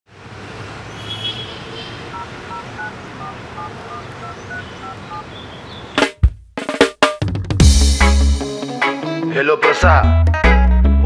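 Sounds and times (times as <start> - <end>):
phone keypad dialing tones: 2.1 - 5.3.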